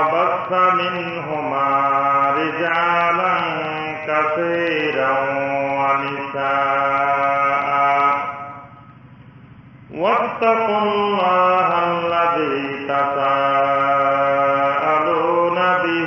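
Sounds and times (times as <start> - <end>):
person chanting: 0.0 - 8.7, 9.9 - 16.0.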